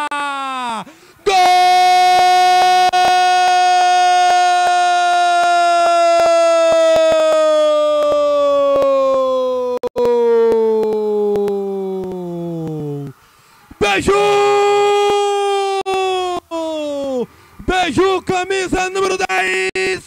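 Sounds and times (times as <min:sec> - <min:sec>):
commentator shouting goal: 0:13.8 - 0:20.0.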